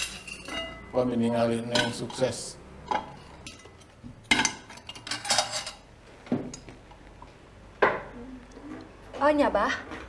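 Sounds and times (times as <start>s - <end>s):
cutlery clinking on dishes: 0.0s - 1.0s, 1.6s - 5.8s.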